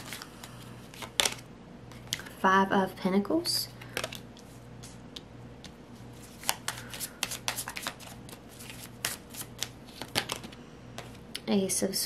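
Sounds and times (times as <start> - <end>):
cards shuffling with snaps: 0.9 - 2.3, 5.6 - 11.2.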